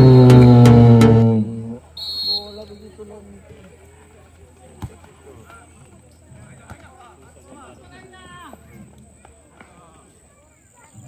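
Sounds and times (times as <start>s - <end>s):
sharp knock: 0.0s - 1.8s
distant shouts and voices: 0.0s - 11.0s.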